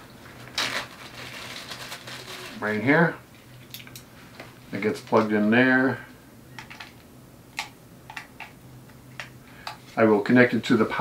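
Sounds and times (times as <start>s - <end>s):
plastic bag crinkling: 0.4s - 2.8s.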